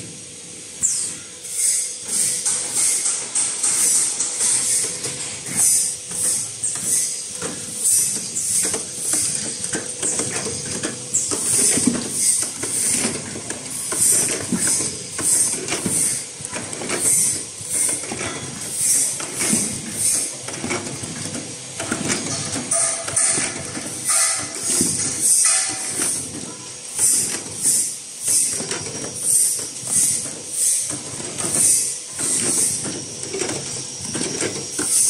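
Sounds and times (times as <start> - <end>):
repeating machine hiss: 0.2 - 35.0
machinery clicking and clatter: 2.0 - 35.0.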